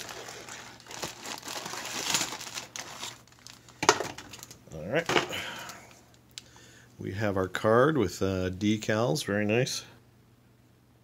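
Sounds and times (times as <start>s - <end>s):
plastic packaging crinkling: 0.0s - 5.9s.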